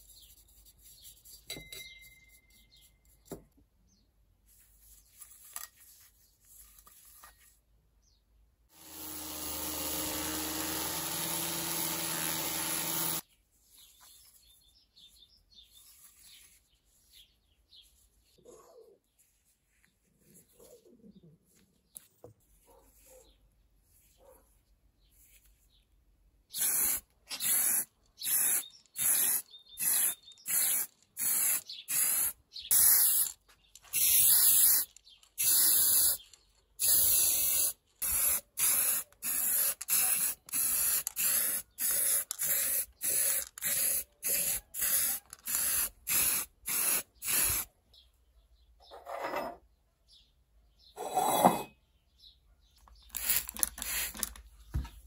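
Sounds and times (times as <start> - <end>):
small birds chirping: 0.0 - 4.2, 13.2 - 55.0
spray can hissing: 26.5 - 33.3, 33.9 - 36.2, 36.8 - 47.7, 53.1 - 54.3.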